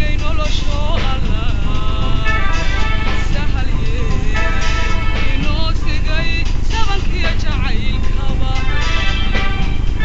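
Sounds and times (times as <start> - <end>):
instrumental backing: 0.0 - 10.0
person singing with bending pitch: 0.0 - 10.0.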